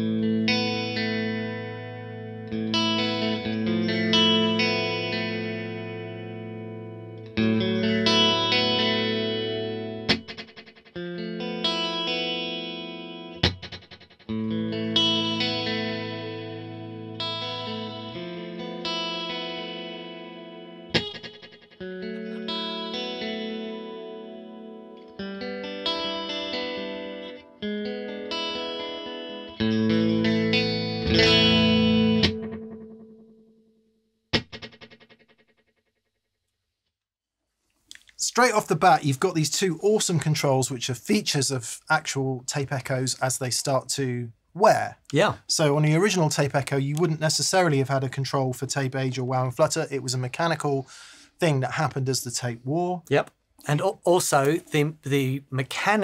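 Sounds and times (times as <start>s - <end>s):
electric guitar chords ringing: 0.0s - 33.7s
muted guitar strums: 10.0s - 11.0s, 13.4s - 15.6s, 20.9s - 22.7s, 29.6s - 33.0s, 34.4s - 35.0s.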